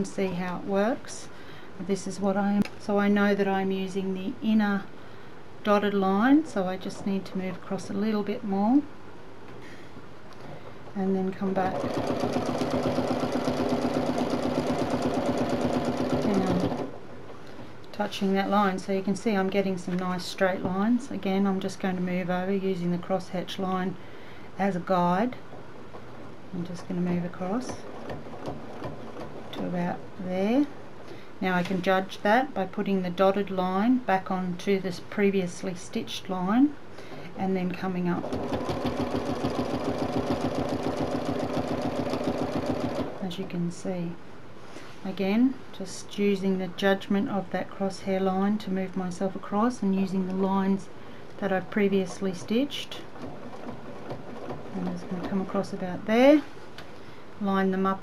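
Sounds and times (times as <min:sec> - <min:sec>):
sewing machine stitching: 0:11.6 - 0:16.9, 0:38.2 - 0:43.2, 0:51.6 - 0:55.7.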